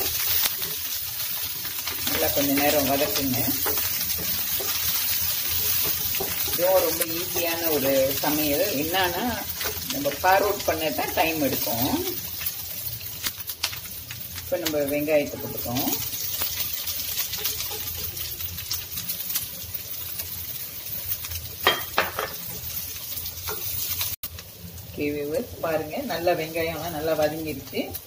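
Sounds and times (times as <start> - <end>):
wooden spatula scraping a pan: 0.0 - 12.8, 15.2 - 19.3
oil sizzling in a frying pan: 0.0 - 28.0.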